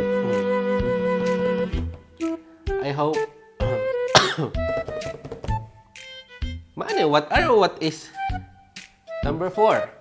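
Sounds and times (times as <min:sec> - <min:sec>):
background music with flute-like notes: 0:00.0 - 0:10.0
man coughing: 0:04.1 - 0:04.7.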